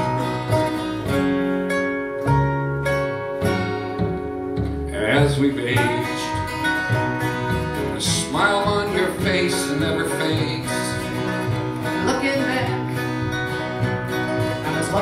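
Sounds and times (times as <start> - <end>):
acoustic guitars: 0.0 - 15.0
upright bass: 0.0 - 15.0.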